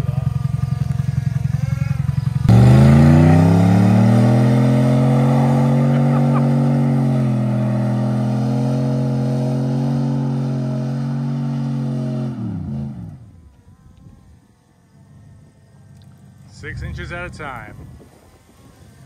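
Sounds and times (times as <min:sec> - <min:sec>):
wheels throwing dirt: 0:00.0 - 0:19.0
truck engine revving hard: 0:02.4 - 0:13.3.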